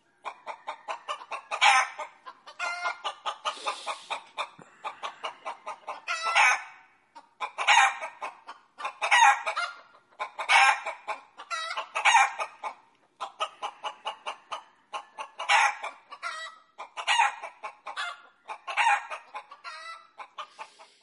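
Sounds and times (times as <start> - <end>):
chicken clucking: 0.0 - 21.0.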